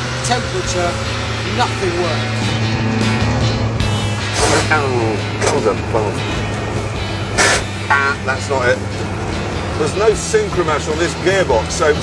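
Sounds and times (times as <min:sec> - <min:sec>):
background music: 0:00.0 - 0:12.0
lorry engine droning: 0:00.0 - 0:12.0.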